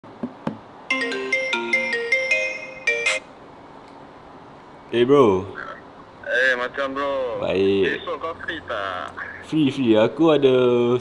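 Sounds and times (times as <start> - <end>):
phone ringtone melody: 0.9 - 3.4.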